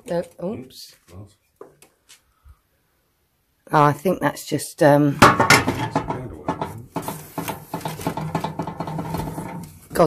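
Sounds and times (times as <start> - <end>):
objects knocking and clinking: 5.2 - 9.6.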